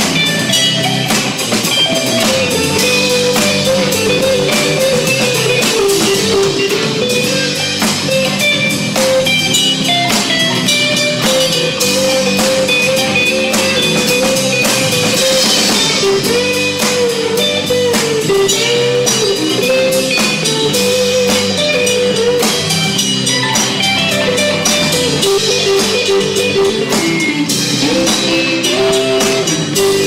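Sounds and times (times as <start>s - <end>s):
bending electric guitar lead: 0.0s - 30.0s
folk rock band playing: 0.0s - 30.0s.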